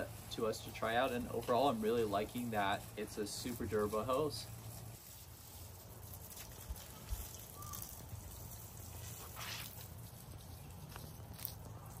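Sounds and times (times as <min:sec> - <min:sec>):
water splashing from garden hose: 0:00.0 - 0:12.0.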